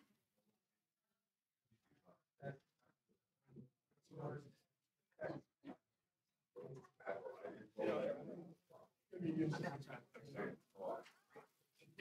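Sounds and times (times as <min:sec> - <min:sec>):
people talking quietly: 0:06.6 - 0:12.0.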